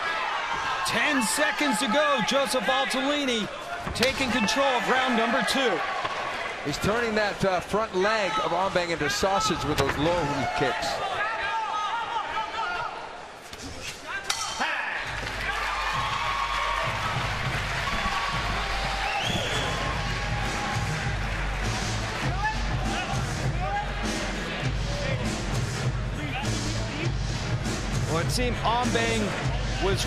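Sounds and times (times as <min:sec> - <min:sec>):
arena crowd noise: 0:00.0 - 0:30.0
arena music with low beat: 0:15.9 - 0:30.0.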